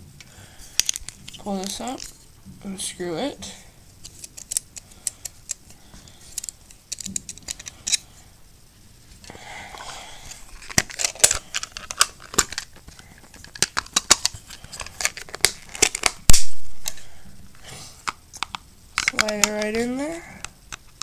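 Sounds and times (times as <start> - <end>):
plastic parts clicking: 0.8 - 2.1, 4.0 - 8.0, 10.5 - 16.2, 18.0 - 19.8.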